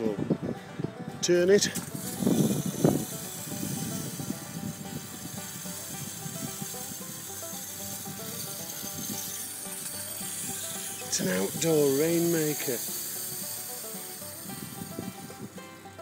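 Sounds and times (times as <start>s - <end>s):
rainmaker trickling patter: 2.0s - 15.4s.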